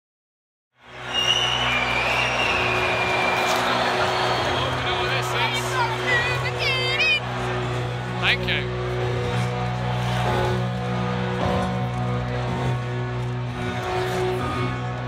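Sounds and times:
large crowd noise: 0:00.8 - 0:15.0
people shouting and whooping: 0:01.0 - 0:07.4.

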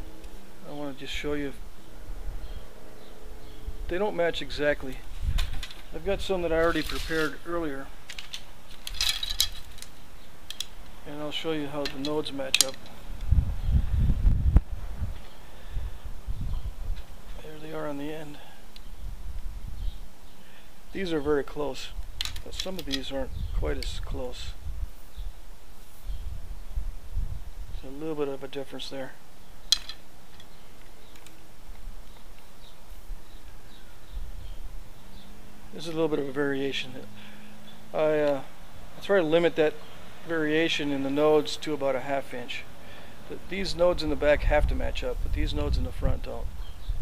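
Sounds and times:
low steady rumble: 0:00.0 - 0:22.5
reed shafts clicking together: 0:06.6 - 0:11.0, 0:11.7 - 0:13.3, 0:22.0 - 0:23.2, 0:29.7 - 0:32.6.

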